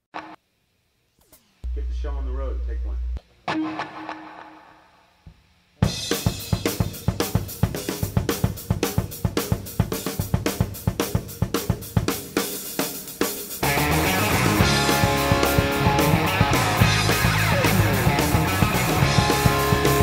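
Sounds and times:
electric guitar: 3.5 - 5.0, 13.6 - 20.0
rock drum kit playing: 5.8 - 20.0
bass guitar: 13.6 - 20.0.

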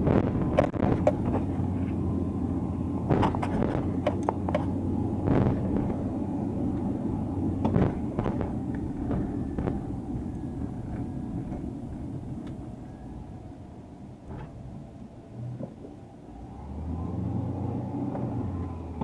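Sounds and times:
car engine and tyres rumble: 0.0 - 19.0.

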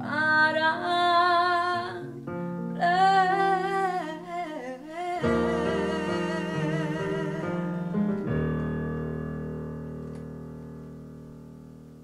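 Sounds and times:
woman singing with vibrato: 0.0 - 2.1, 2.8 - 8.0
keyboard chord: 5.2 - 12.0.

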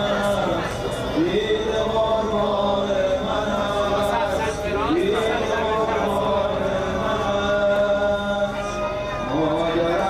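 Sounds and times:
man chanting a lament: 0.0 - 10.0.

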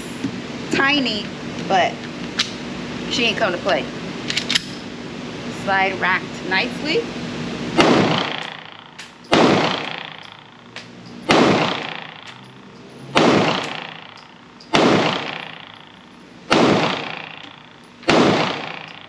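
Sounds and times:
pistol shots echoing indoors: 7.8 - 10.6, 11.3 - 12.5, 13.1 - 15.9, 16.5 - 19.0.

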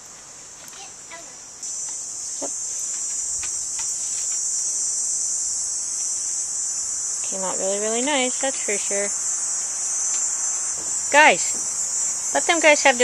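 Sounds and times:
insects droning: 0.0 - 13.0.

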